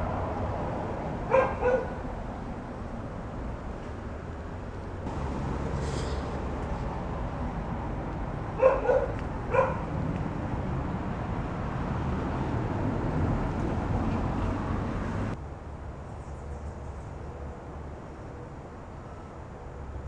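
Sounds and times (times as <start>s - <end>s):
dog barking: 1.3s - 2.0s, 8.6s - 9.9s.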